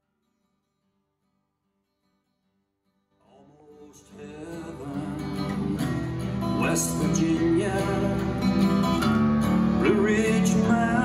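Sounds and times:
acoustic guitar country tune: 0.0s - 11.0s.

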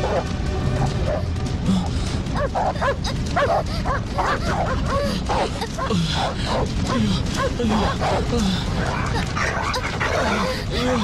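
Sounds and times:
dogs barking and yipping: 0.0s - 1.3s, 2.2s - 10.6s
background music: 0.0s - 11.0s.

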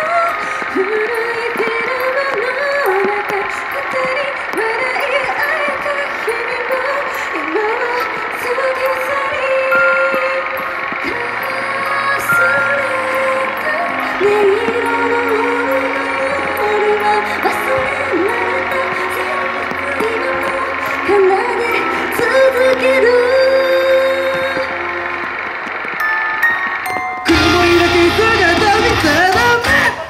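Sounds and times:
person singing into a microphone: 0.0s - 25.1s, 27.2s - 30.0s
pop backing track over speakers: 0.0s - 30.0s
low bass notes: 27.3s - 30.0s.

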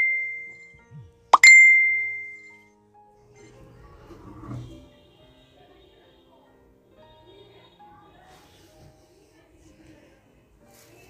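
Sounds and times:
bright ding: 1.4s - 2.6s.

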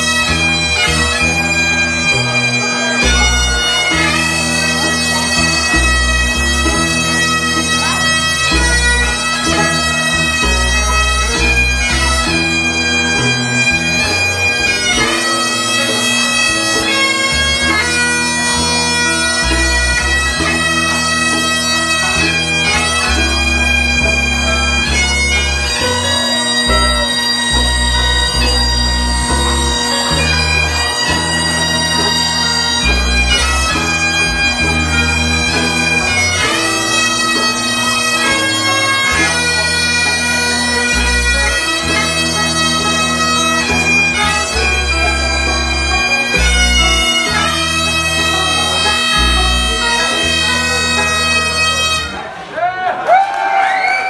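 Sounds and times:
guitars: 0.0s - 52.2s
low bass notes: 0.0s - 52.2s
bagpipes playing a tune: 0.0s - 52.4s.

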